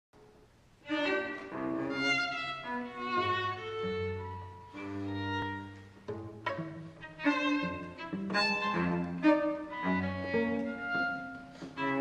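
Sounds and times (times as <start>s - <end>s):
violin and cello duo: 0.8s - 12.0s.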